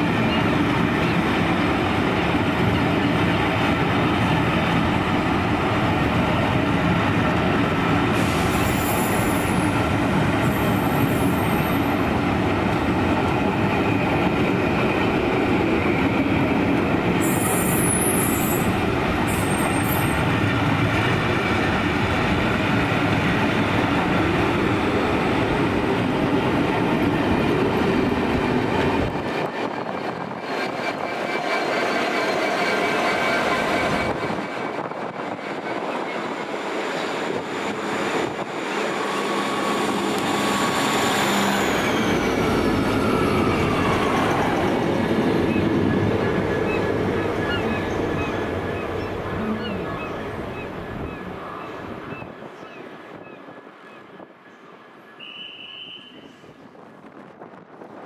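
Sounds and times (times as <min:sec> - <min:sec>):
diesel locomotive: 0:00.0 - 0:58.0
train wheels rumbling on rail: 0:00.0 - 0:58.0.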